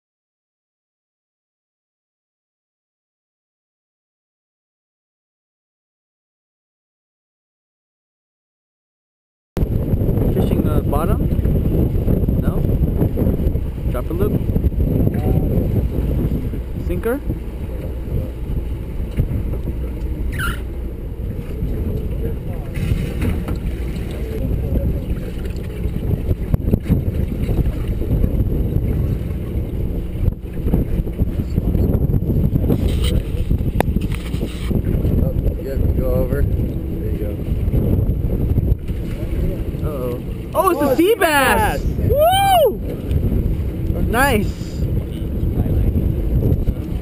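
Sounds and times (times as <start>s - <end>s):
boat engine rumble: 9.6s - 47.0s
water against hull: 9.6s - 47.0s
wind on microphone: 9.6s - 47.0s
swooping calls: 20.3s - 20.7s.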